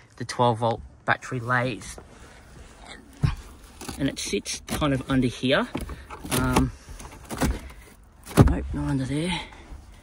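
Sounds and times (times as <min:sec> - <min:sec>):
handling noise in car: 0:01.9 - 0:09.0.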